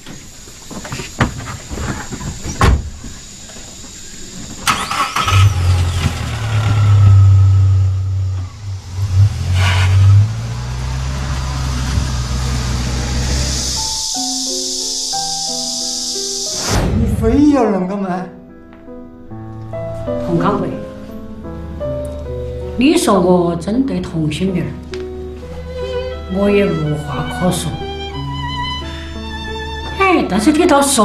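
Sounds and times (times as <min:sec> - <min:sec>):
car engine starting and running: 0:04.6 - 0:14.4
car door shutting: 0:05.3 - 0:14.0.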